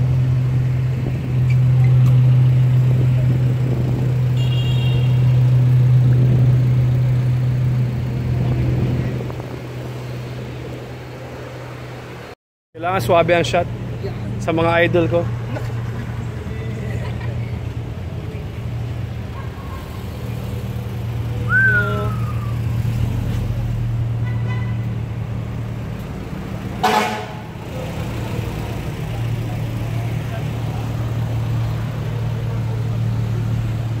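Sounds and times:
car engines idling: 0:00.0 - 0:34.0
car horn toot: 0:04.4 - 0:05.3, 0:26.8 - 0:27.5
short falling whistle-like tone: 0:21.5 - 0:22.8.

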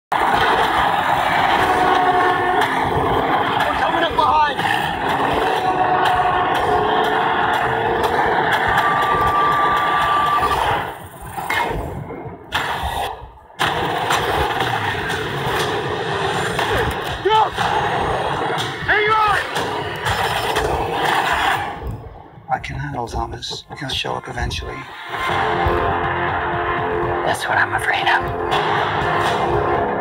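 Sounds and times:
vehicle engines: 0:00.2 - 0:11.5.

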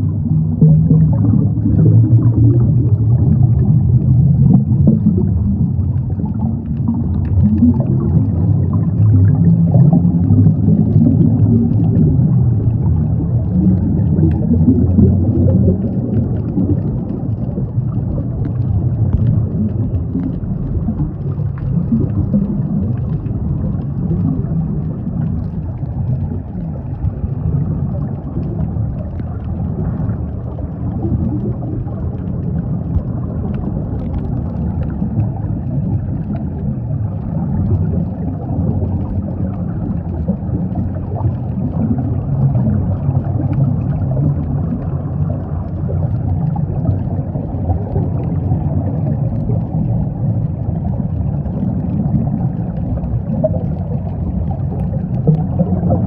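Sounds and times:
bubbling of exhaled air: 0:00.0 - 0:56.0
low underwater rumble: 0:00.0 - 0:56.0.

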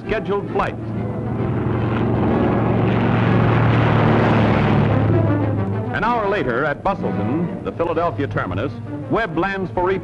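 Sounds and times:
background music: 0:00.0 - 0:10.0
propeller aircraft engine drone: 0:00.0 - 0:10.0.

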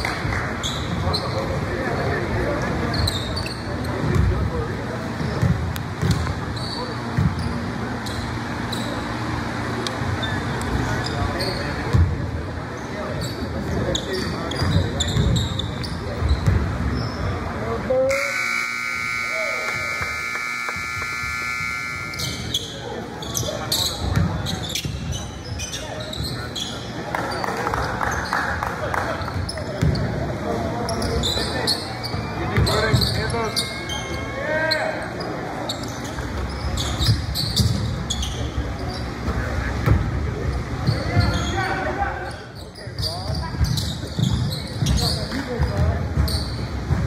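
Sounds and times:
scoreboard horn: 0:18.1 - 0:22.4.

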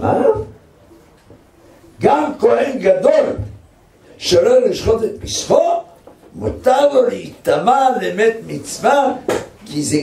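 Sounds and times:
faint room noise: 0:00.0 - 0:10.0
man speaking: 0:02.0 - 0:10.0.

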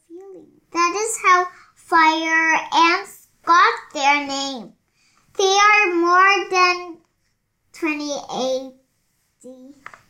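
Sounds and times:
child reading aloud sing-song: 0:00.0 - 0:07.1, 0:07.7 - 0:10.0.

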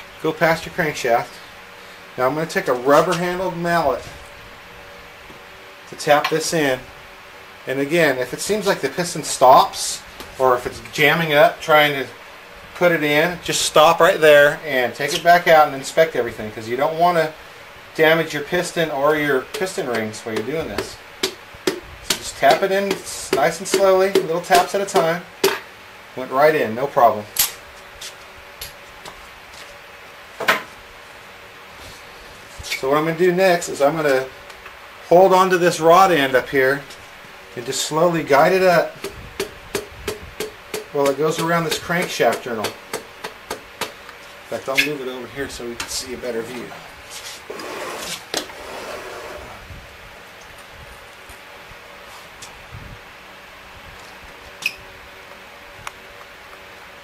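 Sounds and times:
faint room hiss: 0:00.0 - 0:57.0.

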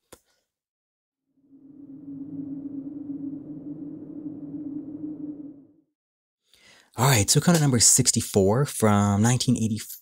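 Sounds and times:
low droning tone: 0:01.4 - 0:05.9.

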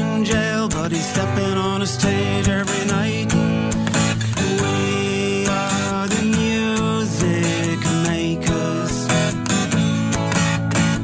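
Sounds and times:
acoustic guitar strumming: 0:00.0 - 0:11.0
person singing long notes: 0:04.1 - 0:09.4.

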